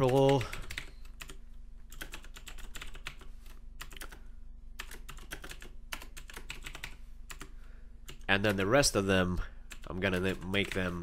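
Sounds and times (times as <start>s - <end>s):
computer keyboard typing: 0.0s - 4.2s, 4.8s - 7.5s, 9.7s - 11.0s.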